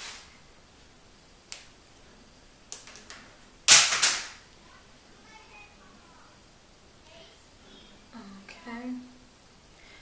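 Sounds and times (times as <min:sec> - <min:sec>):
sharp snaps of small objects: 0:01.4 - 0:01.8, 0:02.7 - 0:04.4.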